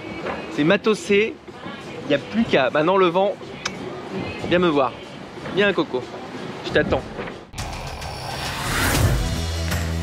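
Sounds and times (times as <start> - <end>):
faint sailboat noise: 0.0 - 7.5
whoosh transition effect: 7.6 - 9.5
logo music sting: 7.6 - 10.0.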